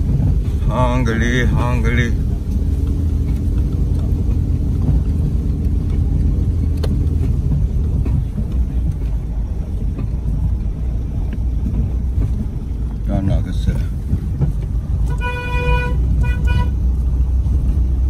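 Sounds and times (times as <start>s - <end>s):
vehicle engine and road rumble: 0.0s - 18.0s.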